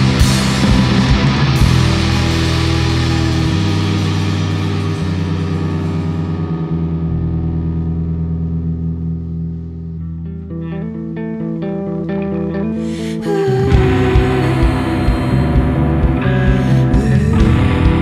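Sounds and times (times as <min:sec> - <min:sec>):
distorted electric guitar: 0:00.0 - 0:18.0
electric bass notes: 0:00.0 - 0:18.0.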